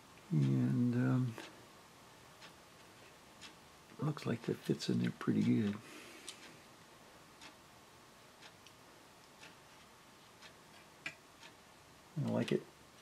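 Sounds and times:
clock ticking faintly: 0:00.0 - 0:06.7, 0:07.3 - 0:07.7, 0:08.3 - 0:13.0.

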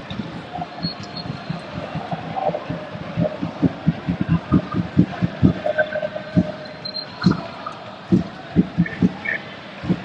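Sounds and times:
stadium crowd noise: 0:00.0 - 0:10.0
drum thumps: 0:08.1 - 0:10.0.

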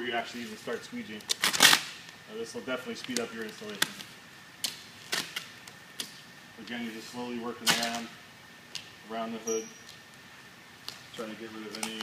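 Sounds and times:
vinyl film snapping: 0:01.2 - 0:02.2, 0:03.0 - 0:06.2.

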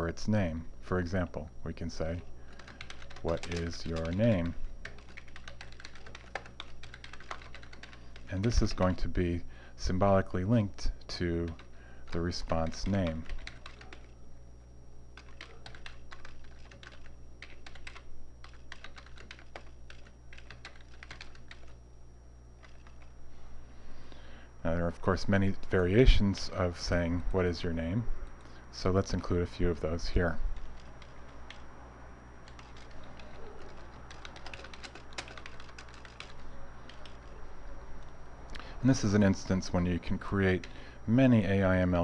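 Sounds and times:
low steady hum: 0:00.0 - 0:42.0
keyboard typing clicks: 0:02.5 - 0:08.6, 0:11.5 - 0:14.1, 0:15.2 - 0:21.8, 0:22.6 - 0:23.1, 0:32.4 - 0:37.4.

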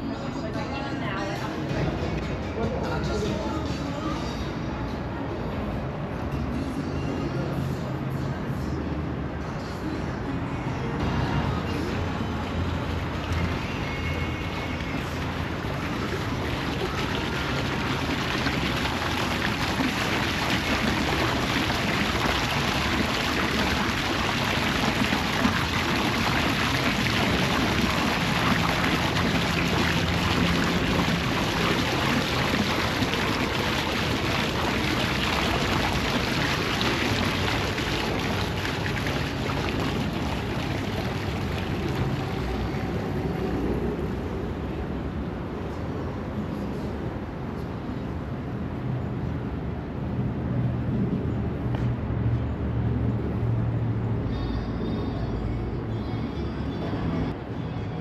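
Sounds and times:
outdoor background rumble: 0:11.0 - 0:46.5
fountain water splashing: 0:11.8 - 0:43.8.

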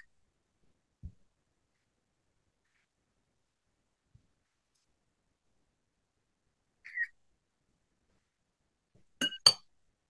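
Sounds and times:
faint chirp: 0:06.8 - 0:07.2.

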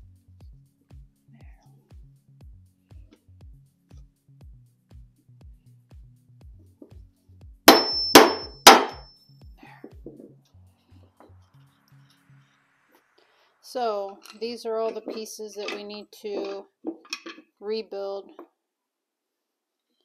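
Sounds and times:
background music with steady beat: 0:00.0 - 0:13.7
hammer striking screwdriver: 0:07.7 - 0:09.0.

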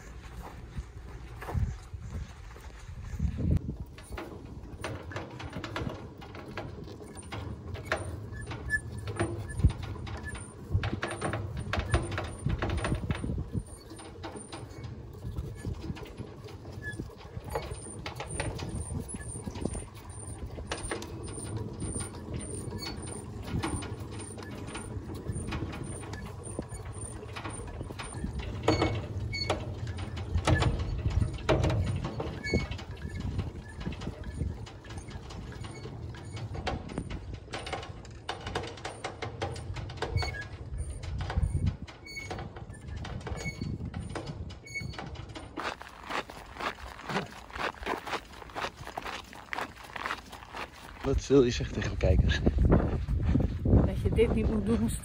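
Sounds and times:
winch clunks: 0:03.2 - 0:55.0
winch clicking: 0:03.6 - 0:51.1.

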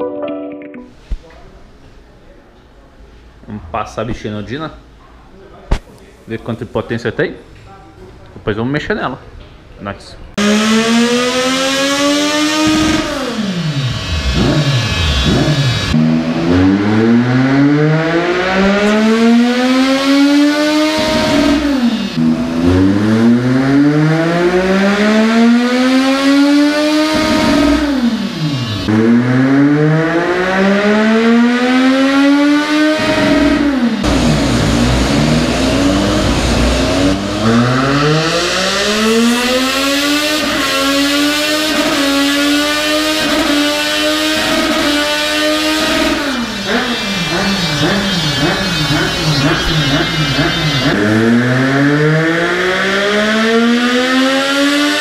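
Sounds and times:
motorcycle engine revving: 0:10.4 - 0:55.0.

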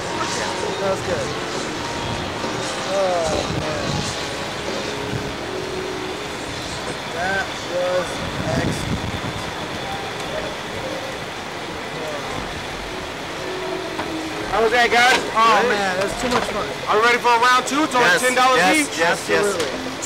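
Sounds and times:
outdoor background rumble and hiss: 0:00.0 - 0:20.0.

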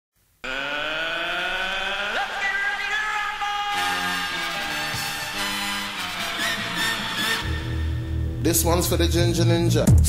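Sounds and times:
buzzy synthesizer tone rising: 0:00.4 - 0:02.9, 0:03.7 - 0:08.2.

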